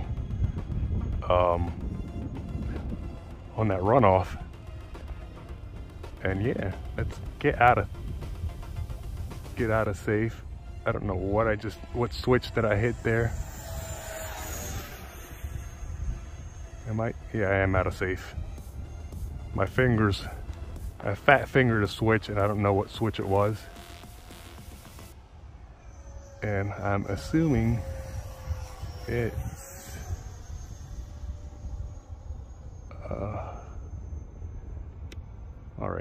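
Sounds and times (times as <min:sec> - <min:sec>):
electric rc jet whine: 0:00.0 - 0:36.0
wind rumbling on microphone: 0:00.0 - 0:36.0.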